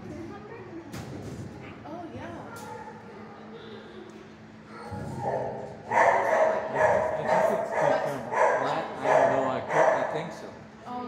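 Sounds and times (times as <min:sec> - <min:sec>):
dog barking: 0:05.2 - 0:10.3.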